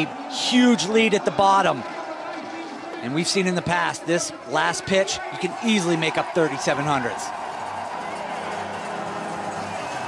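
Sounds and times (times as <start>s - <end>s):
spectators: 0.0s - 10.0s.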